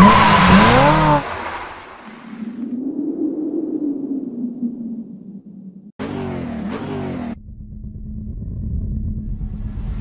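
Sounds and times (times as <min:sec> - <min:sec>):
car engine revving: 0:00.0 - 0:01.4.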